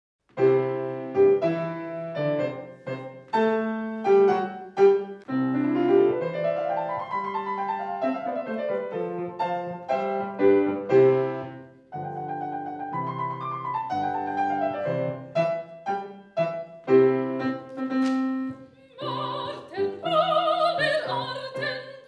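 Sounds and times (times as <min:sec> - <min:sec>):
solo piano playing: 0:00.4 - 0:20.4.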